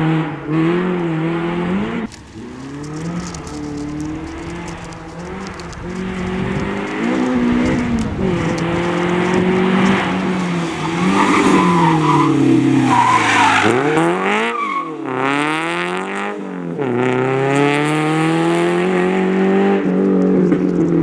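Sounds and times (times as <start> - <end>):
rally car engine revving: 0.0 - 21.0
tyres squealing: 2.2 - 15.1.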